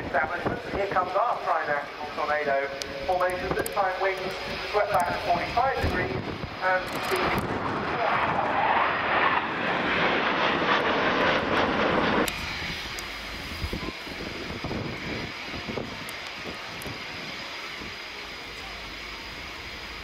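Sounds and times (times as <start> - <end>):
jet engines passing: 0.0 - 20.0.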